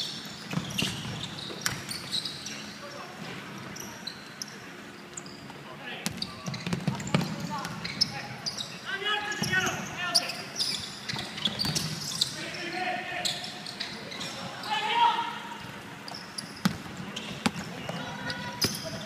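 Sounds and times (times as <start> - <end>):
sneaker squeaks: 0.0 - 19.0
basketball bouncing: 16.6 - 18.0.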